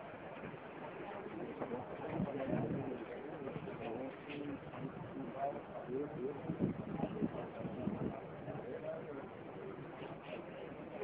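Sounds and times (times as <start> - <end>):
people talking indistinctly: 1.0 - 11.0.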